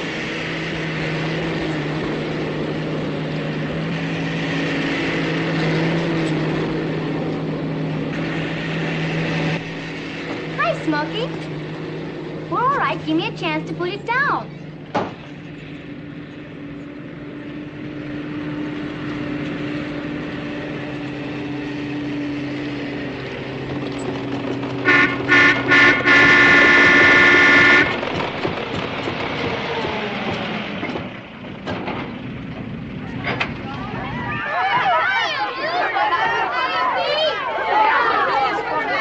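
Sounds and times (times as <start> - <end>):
vehicle engine running: 0.0 - 39.0
horn honking: 24.8 - 28.0.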